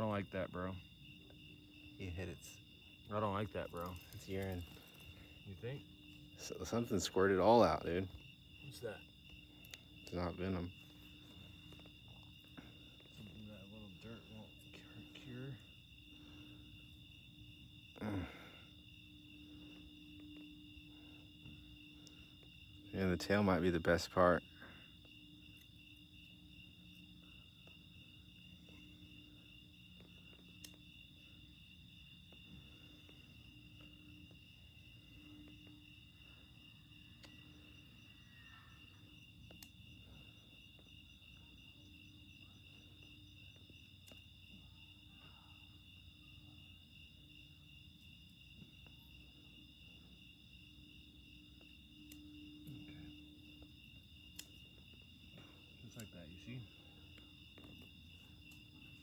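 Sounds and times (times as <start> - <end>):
crickets chirping: 0.0 - 59.0.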